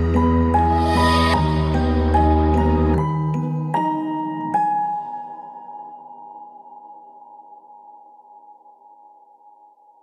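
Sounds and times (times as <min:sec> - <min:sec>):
held synth chord: 0:00.0 - 0:03.7.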